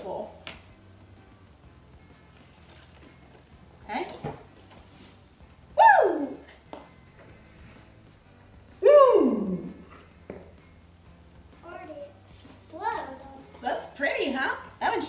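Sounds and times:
person exclaiming whoa: 5.8s - 6.4s.

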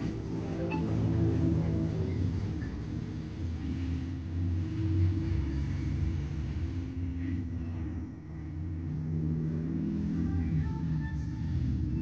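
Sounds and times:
low mechanical rumble: 0.0s - 12.0s
steady hum: 0.0s - 12.0s.

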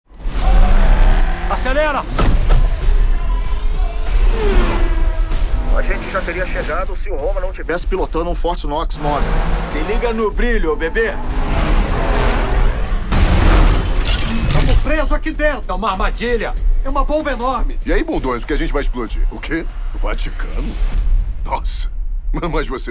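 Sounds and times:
man talking: 5.7s - 11.3s, 21.4s - 22.9s.

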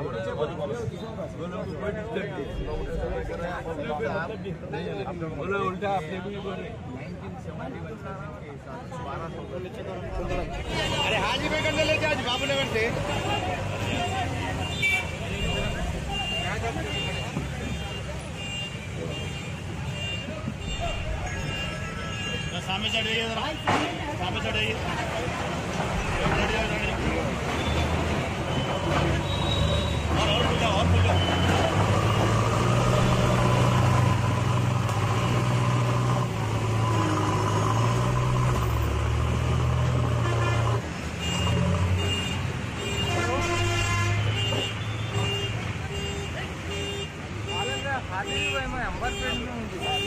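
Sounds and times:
people's voices: 0.0s - 40.8s, 42.8s - 50.0s.

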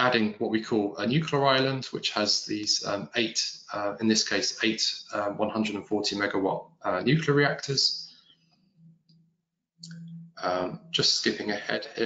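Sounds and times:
speech: 0.0s - 8.1s, 9.8s - 12.0s.

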